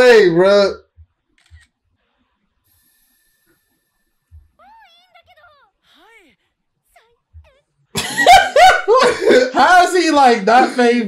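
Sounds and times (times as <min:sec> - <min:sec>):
thin high hiss: 0:02.6 - 0:04.3
girl's excited voice: 0:04.6 - 0:07.6.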